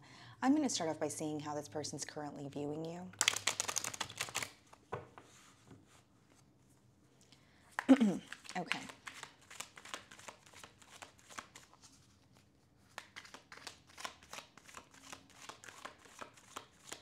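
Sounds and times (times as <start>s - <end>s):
cards being shuffled: 3.1s - 5.3s, 7.8s - 17.0s.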